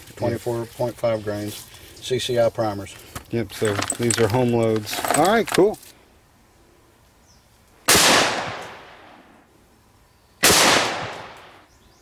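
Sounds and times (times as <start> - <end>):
rifle shots with echo: 7.9 - 9.2, 10.4 - 11.6.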